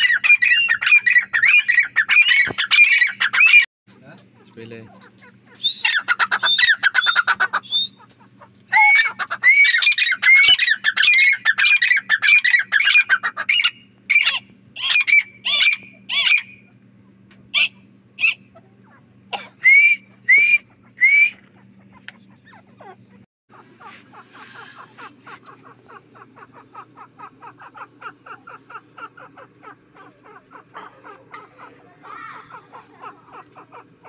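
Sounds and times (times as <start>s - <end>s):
francolins calling: 0.0s - 16.8s, 17.5s - 34.0s
low steady hum: 0.0s - 34.0s.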